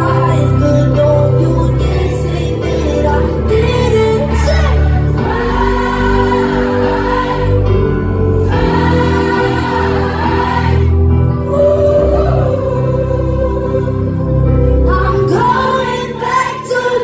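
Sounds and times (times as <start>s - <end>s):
live pop song with singers: 0.0s - 17.0s.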